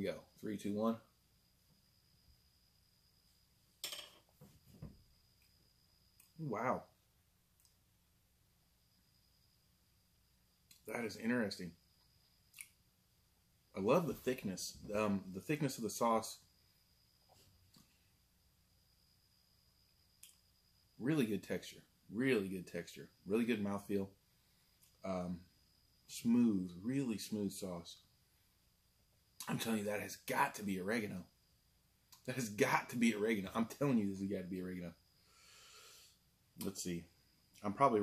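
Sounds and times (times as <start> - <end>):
faint high whine: 0.0 - 38.0.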